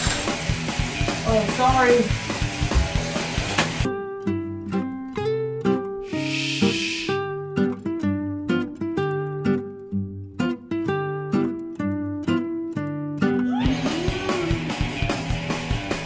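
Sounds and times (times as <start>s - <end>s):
plucked acoustic guitar music: 0.0s - 16.0s
steady hiss: 6.1s - 7.2s.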